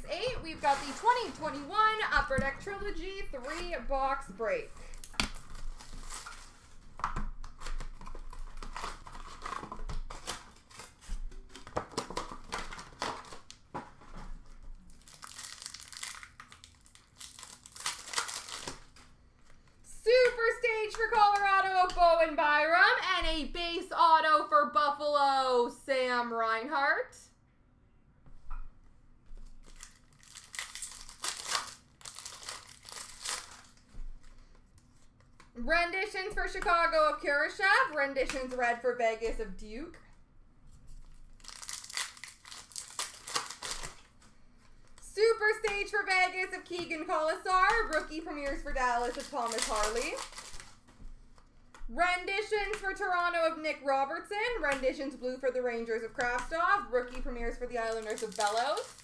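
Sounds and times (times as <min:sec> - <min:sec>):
foil wrappers crinkling: 0:00.1 - 0:19.8, 0:29.4 - 0:35.4, 0:40.9 - 0:51.5, 0:54.5 - 0:59.0
foil wrapper ripping: 0:04.4 - 0:06.8, 0:07.4 - 0:13.7, 0:14.8 - 0:19.5, 0:29.6 - 0:33.9, 0:41.1 - 0:44.2, 0:47.5 - 0:50.8, 0:57.8 - 0:59.0.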